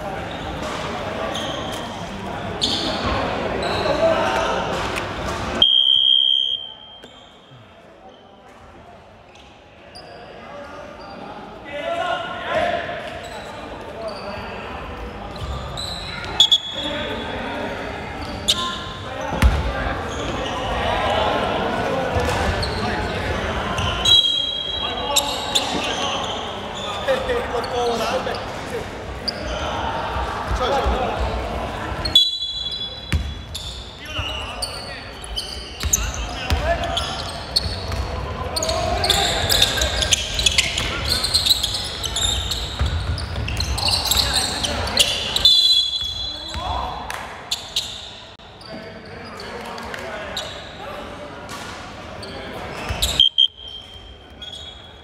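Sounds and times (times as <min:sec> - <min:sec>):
players' voices: 0:00.0 - 0:55.0
shrill referee's whistle: 0:05.6 - 0:07.4, 0:15.8 - 0:16.9, 0:23.9 - 0:26.4, 0:32.1 - 0:34.8, 0:43.9 - 0:46.6, 0:53.0 - 0:55.0
basketball bouncing on wooden court: 0:33.1 - 0:33.4, 0:42.8 - 0:43.6.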